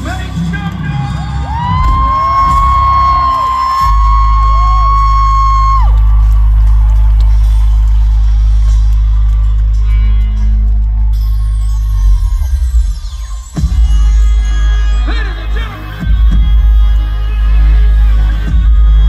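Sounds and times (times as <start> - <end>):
amplified concert music: 0.0 - 19.0
crowd screaming and whooping: 0.0 - 19.0
deep bass drone: 0.0 - 19.0.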